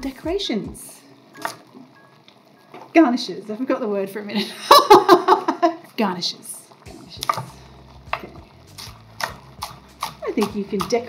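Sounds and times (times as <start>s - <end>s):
knife chopping on wooden board: 7.2s - 11.0s.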